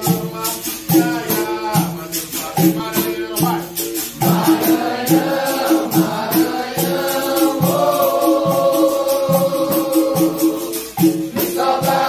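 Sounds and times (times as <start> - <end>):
hand percussion: 0.0 - 12.0
shaking jingle: 0.0 - 12.0
group singing in unison: 4.0 - 12.0.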